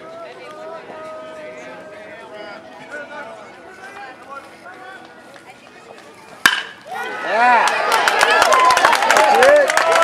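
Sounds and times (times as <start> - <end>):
metal bat hitting ball: 6.4 - 6.8
spectators shouting: 6.4 - 10.0.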